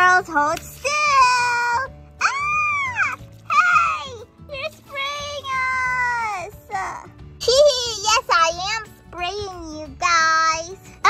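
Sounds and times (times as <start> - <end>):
background music: 0.0 - 11.0
woman squealing in doll voice: 2.2 - 4.2.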